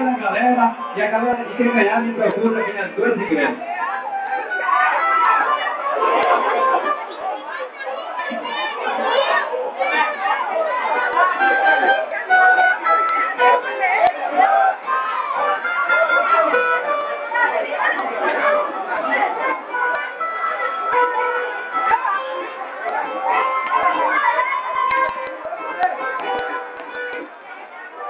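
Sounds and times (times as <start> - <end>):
samba music: 0.0 - 7.1, 9.8 - 28.0
crowd chattering and calling out: 0.0 - 28.0.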